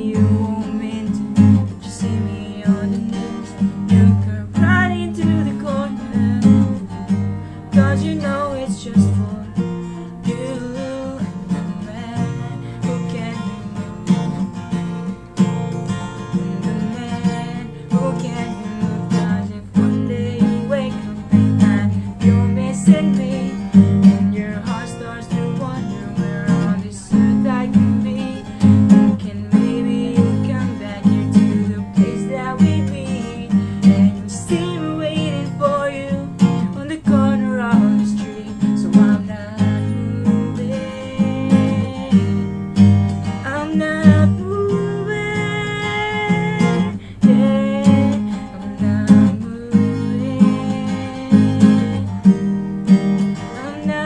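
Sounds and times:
acoustic guitar strumming: 0.0 - 54.0.

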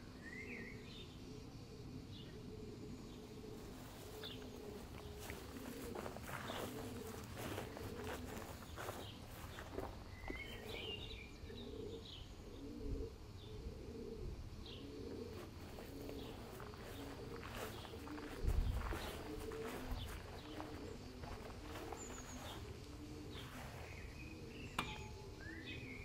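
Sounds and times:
pigeons cooing: 0.0 - 26.0
bird chirps: 2.1 - 13.6, 14.6 - 26.0
light footsteps: 3.6 - 11.0, 15.3 - 24.0.

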